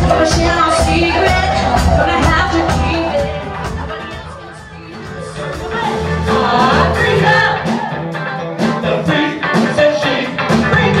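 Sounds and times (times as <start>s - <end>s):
drum beat: 0.0s - 11.0s
electric guitar: 0.0s - 11.0s
live funk band playing: 0.0s - 11.0s.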